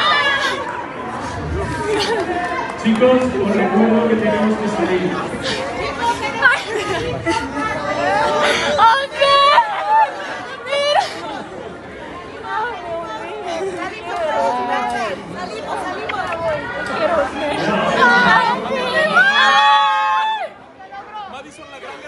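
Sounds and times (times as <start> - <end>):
people talking excitedly: 0.0 - 22.0.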